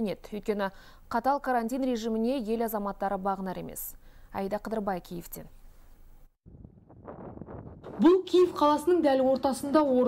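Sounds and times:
wind noise on microphone: 6.4s - 8.8s.

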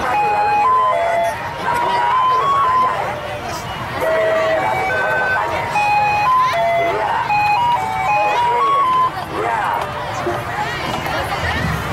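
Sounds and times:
chatter of children and adults: 0.0s - 11.9s.

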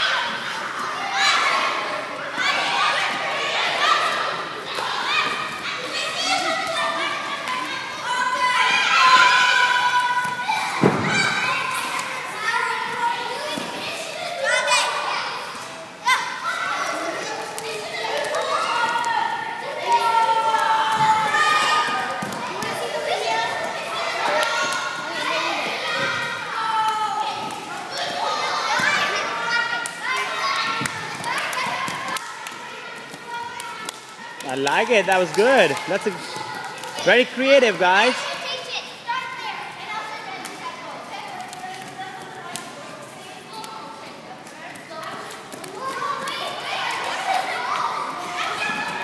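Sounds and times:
children calling and chattering: 0.0s - 49.0s.

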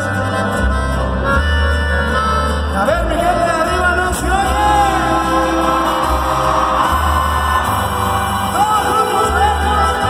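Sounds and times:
deep bass line: 0.0s - 10.0s
live brass band playing: 0.0s - 10.0s.

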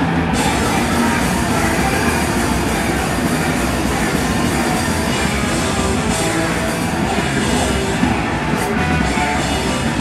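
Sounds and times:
punk band playing loud: 0.0s - 10.0s.

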